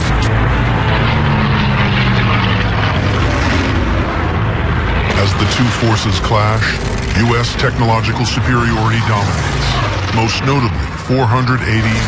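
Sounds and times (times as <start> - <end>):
propeller plane engines droning: 0.0 - 12.0.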